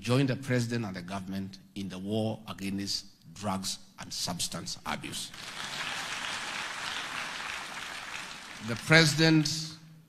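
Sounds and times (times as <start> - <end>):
audience applauding: 5.3 - 9.5.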